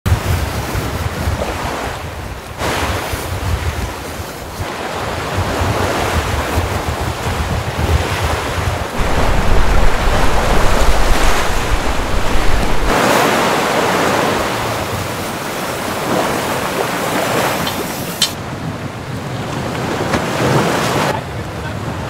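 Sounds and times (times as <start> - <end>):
rough sea waves splashing: 0.1 - 22.0
wind buffeting microphone: 0.1 - 22.0.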